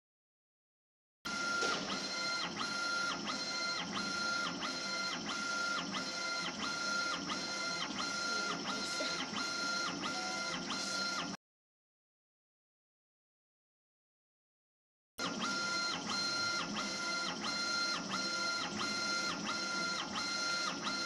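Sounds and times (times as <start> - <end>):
laser engraver motors whining: 1.3 - 11.4, 15.2 - 21.0.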